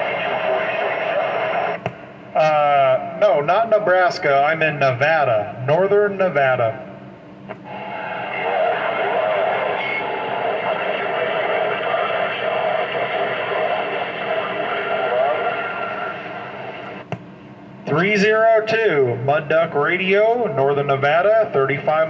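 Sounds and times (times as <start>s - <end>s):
garbled distant radio voices: 0.0s - 2.0s, 7.6s - 17.1s
radio static with wavering tones: 0.0s - 2.8s, 7.6s - 17.1s
radio click: 7.5s - 7.7s.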